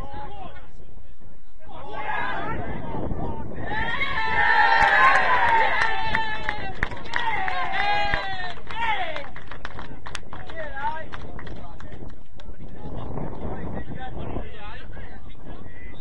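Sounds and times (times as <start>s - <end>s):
footballers shouting: 1.6s - 9.3s.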